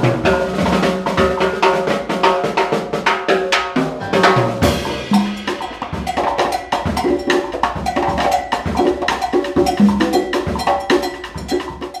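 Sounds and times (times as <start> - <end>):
congas struck by hand: 0.0 - 12.0
drum kit: 0.0 - 12.0
cowbell: 4.8 - 12.0.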